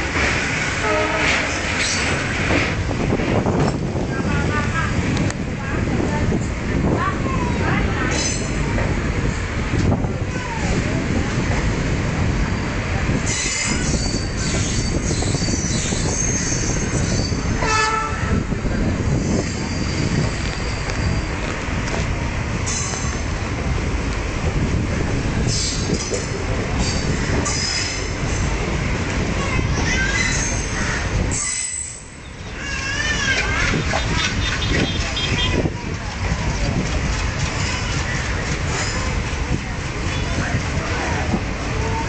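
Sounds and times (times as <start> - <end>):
train wheels rumbling on rails: 0.0 - 42.0.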